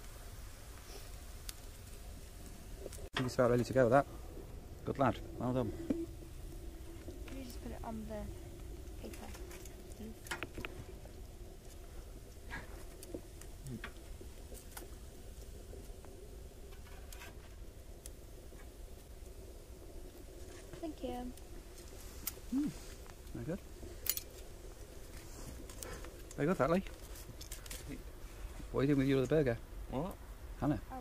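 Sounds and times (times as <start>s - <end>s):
low steady hum: 0.0s - 31.0s
murmured words: 22.5s - 23.6s.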